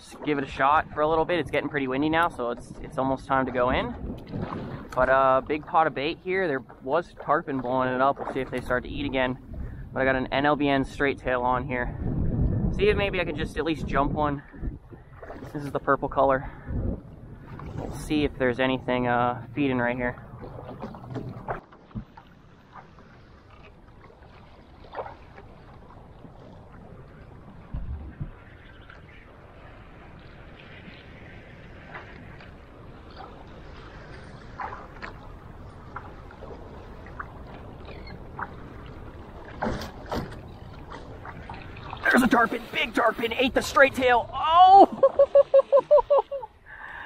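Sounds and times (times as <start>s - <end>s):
steady wind: 0.0s - 47.0s
water lapping against boat hull: 0.0s - 47.0s.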